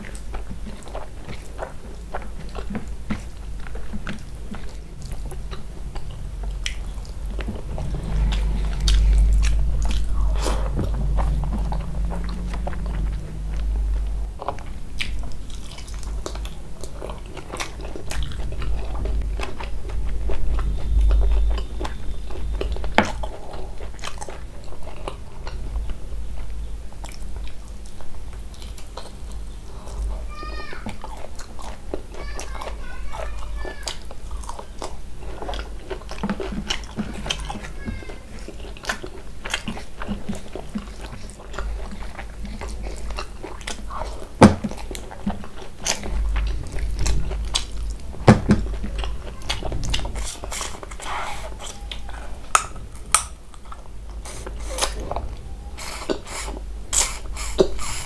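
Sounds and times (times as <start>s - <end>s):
steady low rumble: 0.0s - 30.3s, 32.7s - 55.8s
person chewing with wet smacks: 0.0s - 58.0s.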